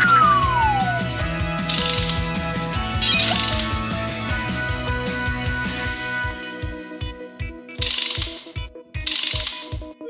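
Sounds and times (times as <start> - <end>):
cartoon falling whistle: 0.0 - 1.1
background music with steady beat: 0.0 - 10.0
ratcheting bursts: 1.7 - 2.3, 3.0 - 3.8, 7.8 - 9.8.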